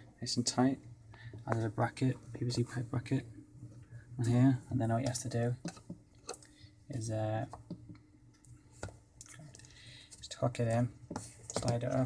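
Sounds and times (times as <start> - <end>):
plastic handling: 8.7 - 12.0.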